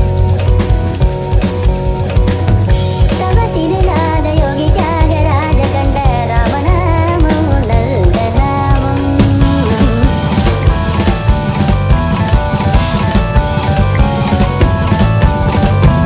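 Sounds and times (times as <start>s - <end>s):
held keyboard notes: 0.0s - 16.0s
live band music: 0.0s - 16.0s
bass drum and snare hits: 8.4s - 16.0s.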